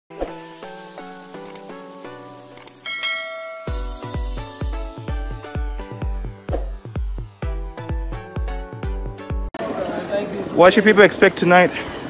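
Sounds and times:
short clicks: 1.4s - 1.8s, 2.5s - 2.8s
ringing bell chime: 2.8s - 4.4s
electronic dance beat: 3.0s - 9.5s.

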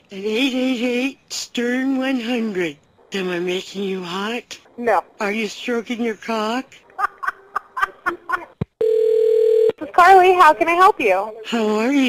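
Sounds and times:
people laughing: 6.9s - 8.6s
telephone line tone: 8.8s - 9.8s.

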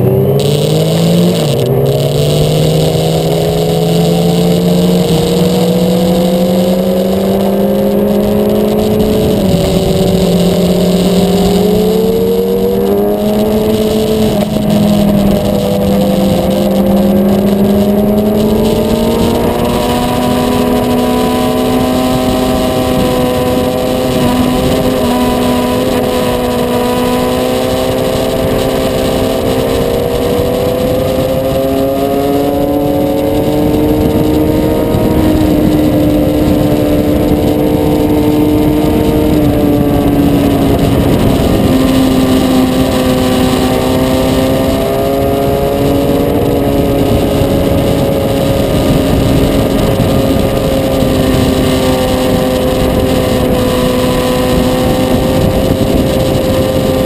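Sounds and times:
motorcycle engine revving: 0.0s - 57.0s
wind on microphone: 0.0s - 57.0s.

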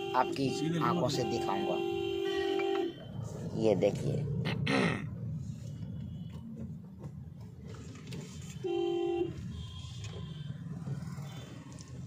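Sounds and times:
vehicle horn honk: 0.0s - 3.1s, 8.5s - 10.5s
car interior rumble: 0.0s - 12.0s.

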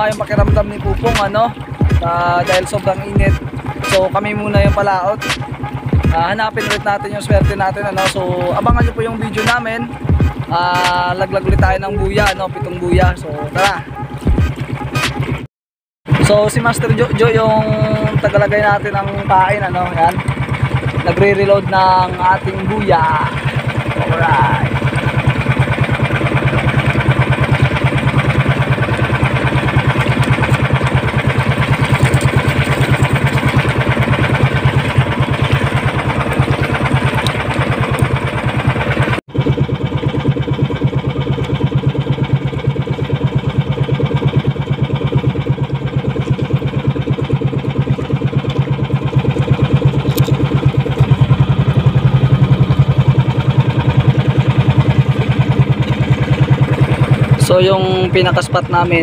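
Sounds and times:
small boat engine running: 0.0s - 59.0s.

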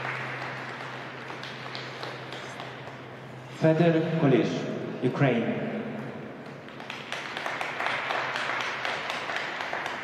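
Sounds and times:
scattered applause: 0.0s - 3.0s, 6.4s - 10.0s.

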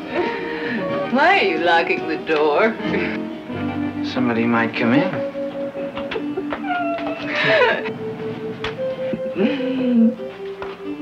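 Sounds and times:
background music with held notes: 0.0s - 11.0s
woman laughing and vocalising: 6.2s - 7.9s.

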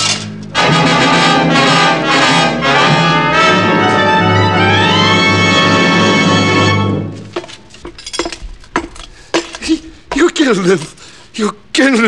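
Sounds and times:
sharp clinks and knocks: 7.4s - 9.7s.

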